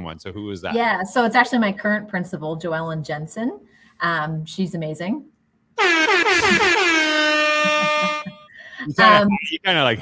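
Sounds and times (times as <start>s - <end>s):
loud held pitched tone: 5.8s - 9.7s.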